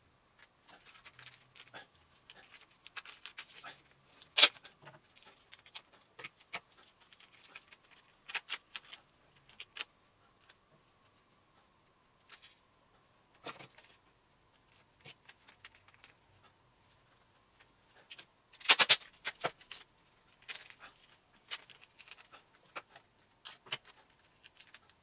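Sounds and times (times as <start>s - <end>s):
tape crinkling and clicking: 0.3s - 10.7s, 14.6s - 16.2s, 17.0s - 25.0s
tape ripping: 2.4s - 4.7s, 18.6s - 19.8s.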